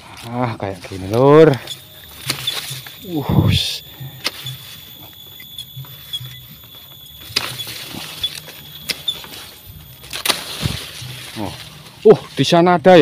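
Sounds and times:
stems snapping: 0.0 - 12.1
bamboo leaves rustling and crackling: 0.0 - 13.0.

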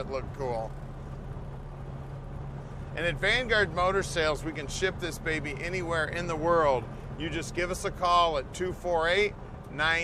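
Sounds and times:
car engine droning: 0.0 - 10.0
road rumble: 0.0 - 10.0.

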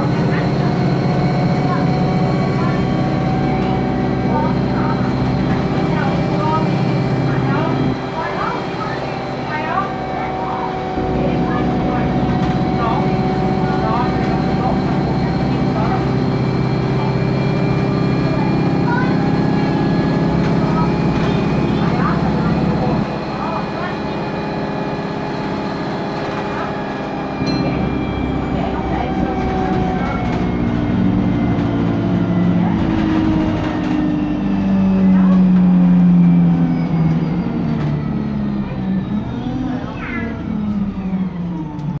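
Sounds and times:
bus diesel engine droning: 0.0 - 42.0.

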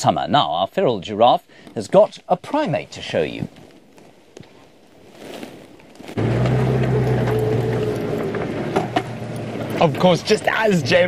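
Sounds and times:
vehicle engine humming: 6.2 - 11.0.

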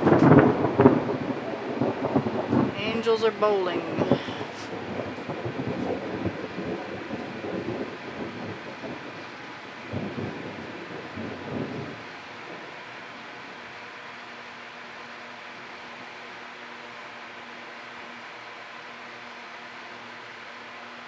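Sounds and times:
thunder rolling and rumbling: 0.0 - 14.0
steady hiss: 1.7 - 21.0.

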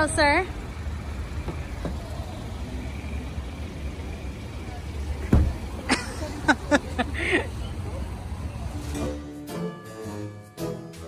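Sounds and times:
low street ambience rumble: 0.0 - 11.0.

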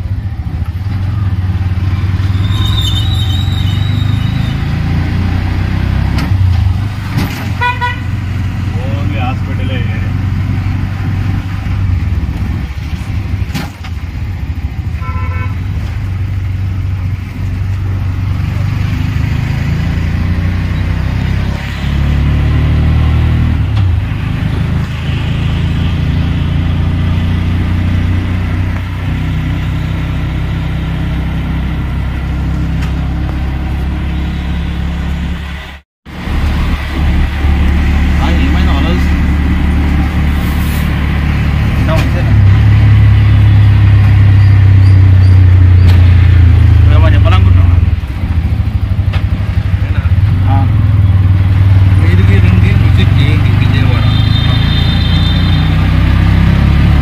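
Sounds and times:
auto-rickshaw engine running: 0.0 - 57.0
street traffic: 0.0 - 57.0
vehicle horns beeping: 2.4 - 4.6, 7.6 - 8.2, 15.0 - 15.7, 53.8 - 55.9.

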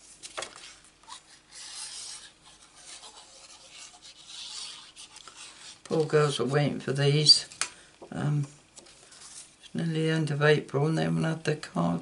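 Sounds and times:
card sliding and rubbing: 0.0 - 7.5, 8.8 - 9.7.

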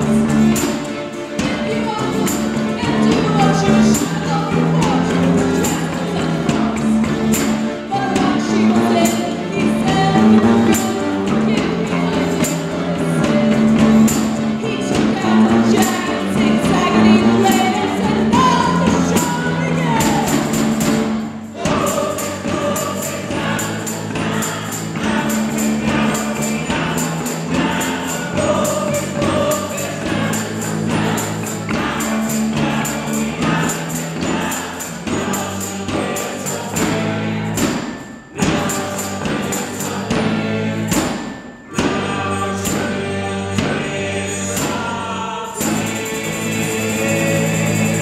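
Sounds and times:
accordion: 0.0 - 48.0
cello: 0.0 - 48.0
live band sustained chords: 0.0 - 48.0
several voices singing together: 0.0 - 48.0
sharp percussive hits: 0.0 - 48.0
tambourine beat: 0.0 - 48.0.

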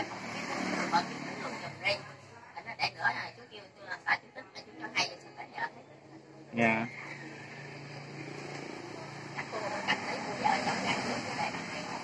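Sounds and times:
indistinct talking: 0.0 - 12.0.

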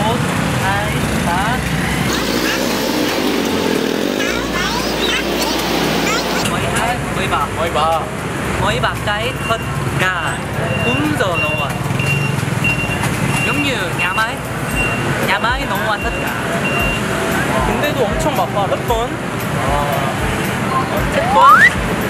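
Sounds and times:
people talking: 0.0 - 3.3, 3.9 - 11.9, 13.4 - 14.5, 15.2 - 22.0
motorbike engines running: 0.0 - 22.0
street traffic: 0.0 - 22.0
short high beeps: 10.7 - 13.6, 20.7 - 21.8.

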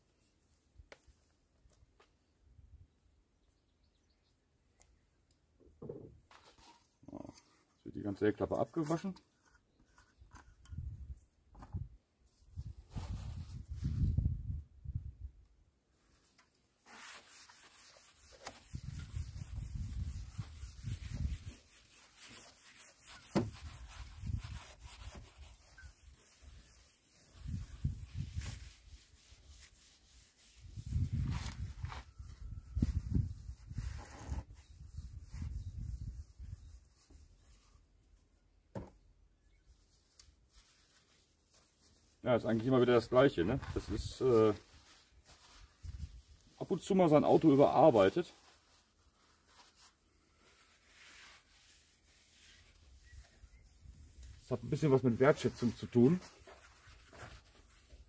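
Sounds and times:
cloth wiping car paint: 12.3 - 14.3, 16.0 - 38.4, 39.7 - 58.0.

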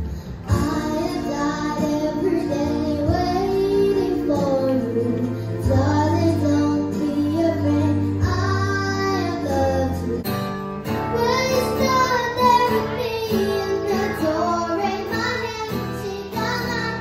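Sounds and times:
backing track: 0.0 - 17.0
girl singing into a microphone: 0.2 - 10.3, 11.0 - 17.0.

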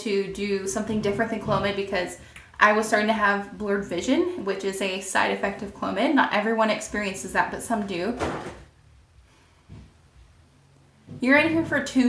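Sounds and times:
object falling with dull thump: 9.7 - 10.0.

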